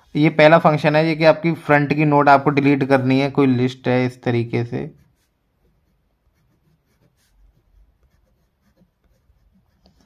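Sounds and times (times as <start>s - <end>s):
pen scratching on paper: 4.8s - 10.0s.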